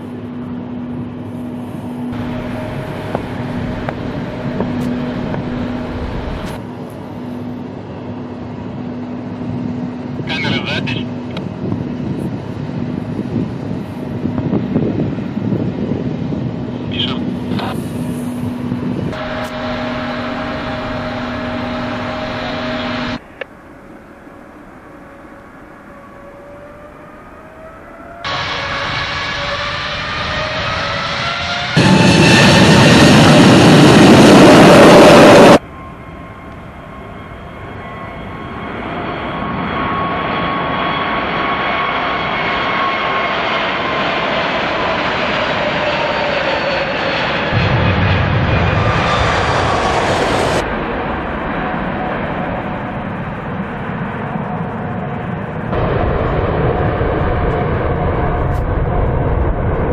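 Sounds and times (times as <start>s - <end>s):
jet engines whining and roaring: 0.0s - 59.9s.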